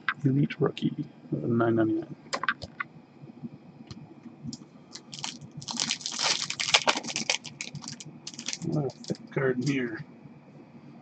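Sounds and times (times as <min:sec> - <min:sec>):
card pack wrapper tearing and crinkling: 0:04.9 - 0:09.2.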